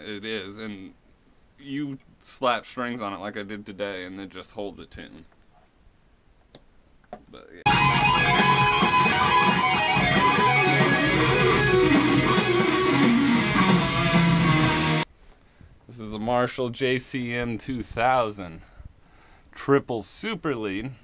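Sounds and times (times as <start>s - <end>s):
backing music: 7.6s - 15.0s
electric guitar solo: 7.7s - 15.0s.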